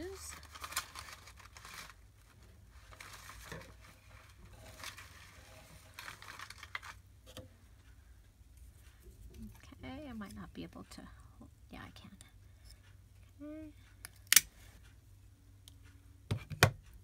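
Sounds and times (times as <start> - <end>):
paper rustling: 0.0 - 7.0.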